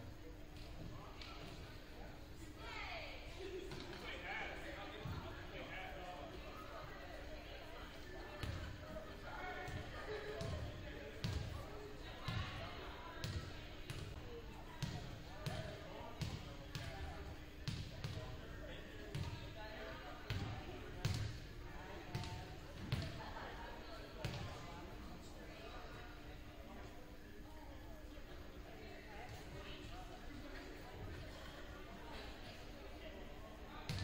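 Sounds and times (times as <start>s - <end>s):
indistinct chatter: 0.0s - 34.0s.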